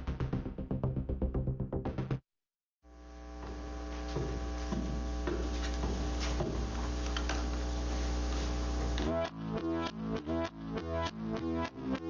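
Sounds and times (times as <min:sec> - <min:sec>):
electrical mains hum: 0:02.9 - 0:09.4
electronic music with a beat: 0:09.0 - 0:12.0.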